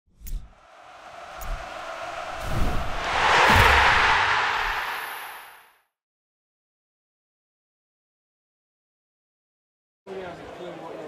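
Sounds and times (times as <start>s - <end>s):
whoosh of noise: 0.4s - 5.8s
low thumps: 0.9s - 5.4s.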